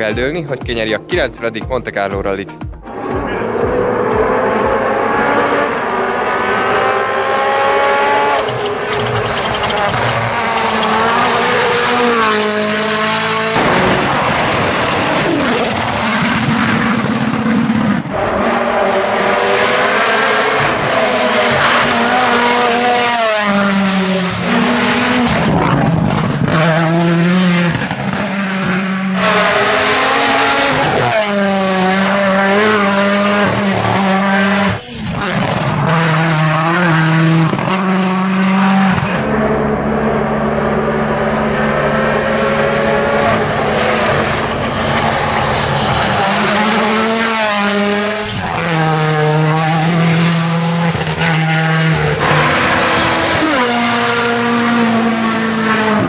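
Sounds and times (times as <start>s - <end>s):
rally car engines revving: 2.8s - 56.0s.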